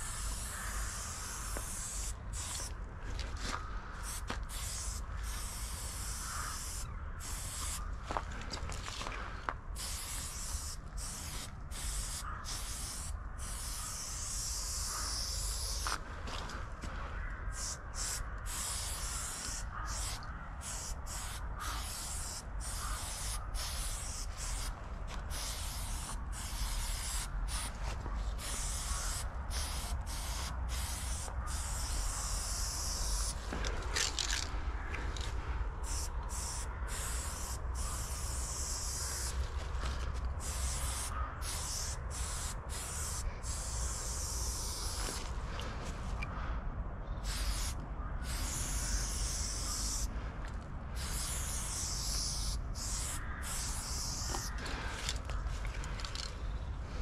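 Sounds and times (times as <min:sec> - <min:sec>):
spray paint can hissing: 0:00.0 - 0:02.8, 0:04.0 - 0:07.9, 0:09.8 - 0:16.0, 0:17.5 - 0:34.4, 0:35.2 - 0:45.3, 0:47.2 - 0:50.1, 0:51.0 - 0:55.2.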